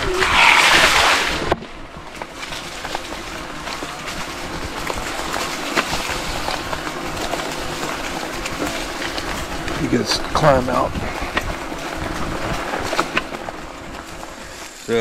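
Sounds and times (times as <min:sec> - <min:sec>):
tyres rolling on dirt trail: 0:00.0 - 0:15.0.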